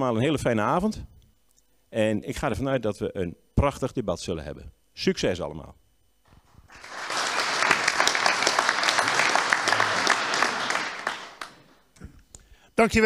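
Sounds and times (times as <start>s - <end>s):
audience applauding: 6.7s - 11.8s.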